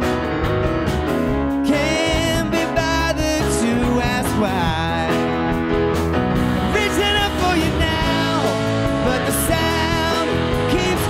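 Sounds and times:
bass guitar: 0.0s - 11.0s
drums: 0.0s - 11.0s
electric guitar: 0.0s - 11.0s
stage piano: 0.0s - 11.0s
gliding pitched notes: 5.2s - 11.0s.

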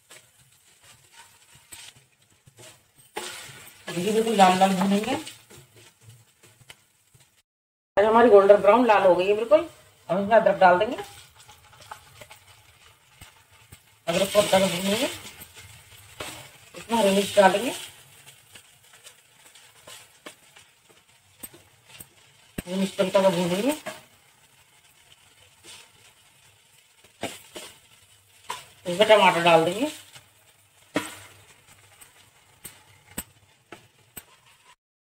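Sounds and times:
onions sizzling in oil: 0.0s - 7.4s, 8.0s - 34.8s.

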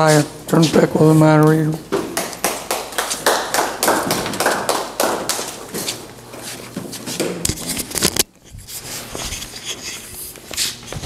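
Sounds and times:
small audience clapping: 2.1s - 5.7s.

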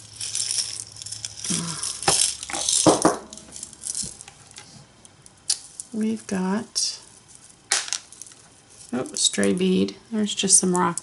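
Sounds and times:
beads rattling in glass jar: 0.0s - 4.3s, 7.0s - 9.8s.

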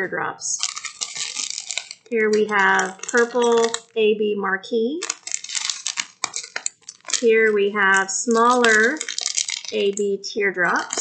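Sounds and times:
plastic bag crinkling: 0.5s - 4.0s, 4.9s - 11.0s
small stones clicking together: 0.6s - 4.0s, 5.0s - 11.0s.

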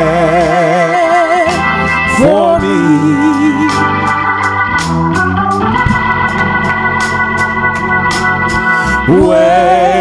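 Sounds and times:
organ chords: 0.0s - 10.0s.

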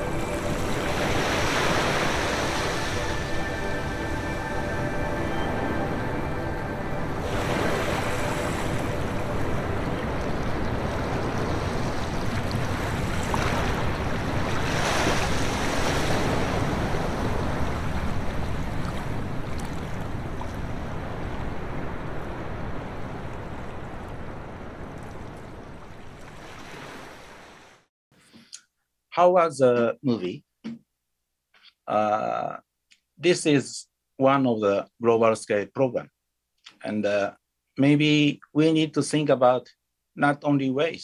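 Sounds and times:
surf washing onto rocky shore: 0.3s - 3.2s, 9.7s - 19.2s.

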